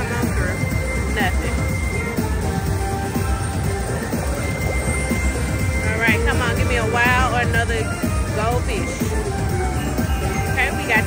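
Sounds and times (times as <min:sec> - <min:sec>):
slot machine electronic music: 0:00.0 - 0:11.0.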